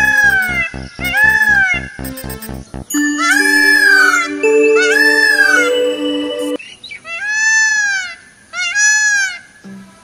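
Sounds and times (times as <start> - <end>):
electronic music jingle: 0.0 - 6.6
pulsing music beat: 0.0 - 6.6.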